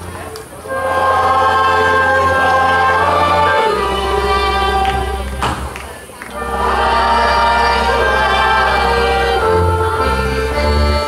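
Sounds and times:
group of voices singing folk song: 0:00.1 - 0:11.0
instrumental accompaniment: 0:00.6 - 0:11.0.

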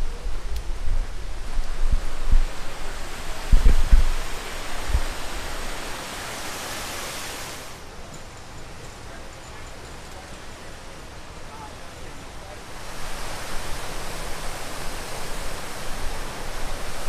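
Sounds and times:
wind buffeting microphone: 0:00.0 - 0:06.0
fountain water rushing and splashing: 0:00.0 - 0:17.0.

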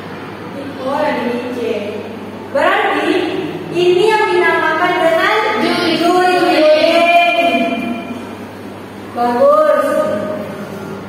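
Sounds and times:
echoing murmur: 0:00.0 - 0:11.0.

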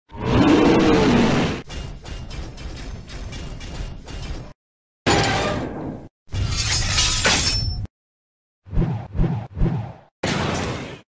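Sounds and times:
robot dinosaur roar: 0:00.1 - 0:01.6.

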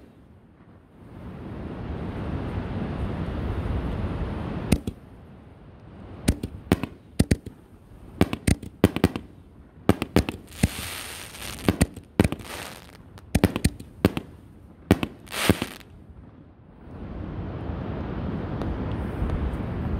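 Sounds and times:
crackling hiss: 0:00.0 - 0:16.4
fireworks bangs and pops: 0:04.7 - 0:05.0, 0:06.2 - 0:15.9.

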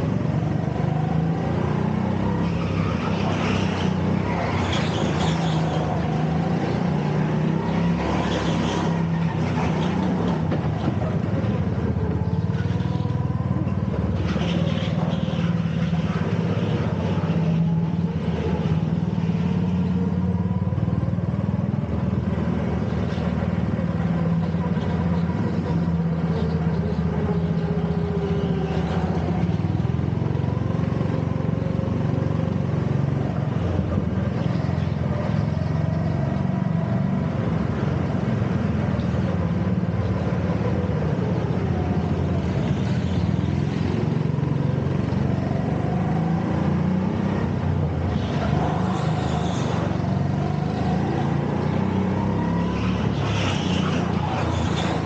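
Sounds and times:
go-kart engine: 0:00.0 - 0:55.0.

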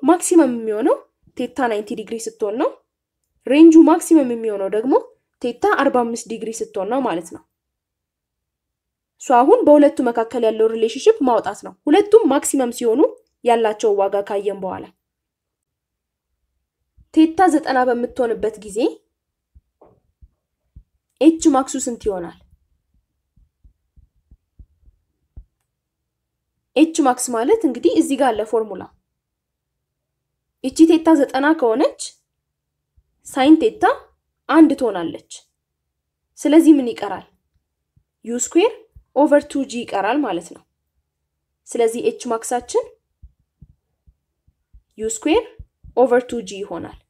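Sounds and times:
stylus tapping on drawing tablet: 0:19.5 - 0:21.1, 0:22.0 - 0:25.7, 0:43.2 - 0:46.0.

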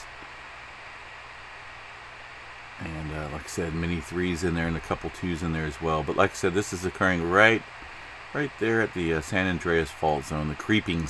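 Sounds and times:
faint low hum: 0:00.0 - 0:11.0
steady low hiss: 0:00.0 - 0:11.0.

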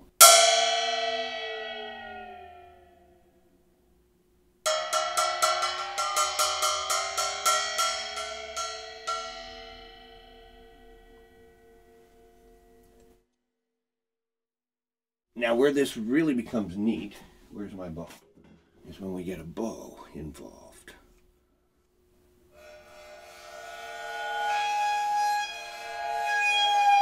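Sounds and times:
cymbal roll: 0:00.1 - 0:03.2, 0:04.7 - 0:13.0
gong-like cymbal ringing: 0:00.2 - 0:03.3, 0:04.7 - 0:13.0, 0:22.5 - 0:27.0.

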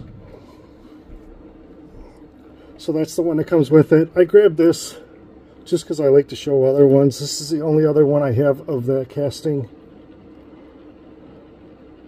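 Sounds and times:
turntable motor hum: 0:00.0 - 0:12.0.

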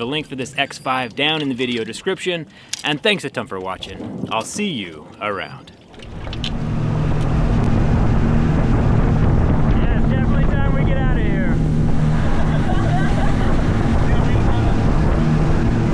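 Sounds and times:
wind on microphone: 0:03.8 - 0:05.2, 0:05.9 - 0:15.9
outboard motor drone: 0:05.8 - 0:15.9.

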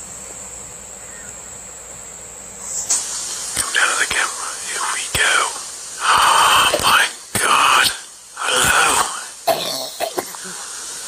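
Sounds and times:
person whispering breathily: 0:03.6 - 0:09.4.

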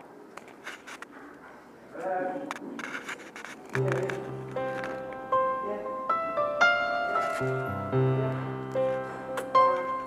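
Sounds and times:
faint rustling: 0:00.4 - 0:05.4, 0:06.9 - 0:07.9.

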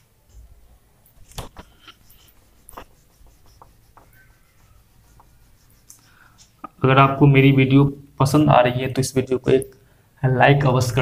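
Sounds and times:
duster rubbing on whiteboard: 0:01.2 - 0:06.6.

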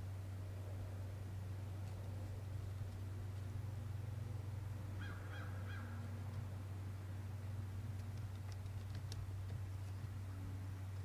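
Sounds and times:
low hum: 0:00.0 - 0:11.0
crow cawing: 0:05.0 - 0:06.0.

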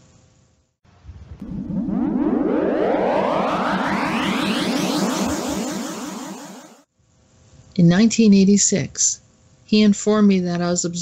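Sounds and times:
synthesized rising sweep: 0:01.4 - 0:06.9.

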